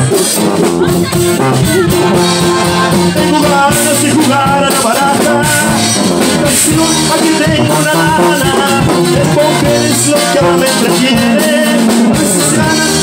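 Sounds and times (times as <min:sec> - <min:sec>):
button accordion melody: 0:00.0 - 0:13.0
strummed guitar rhythm: 0:00.0 - 0:13.0
tuba bass notes: 0:00.0 - 0:13.0.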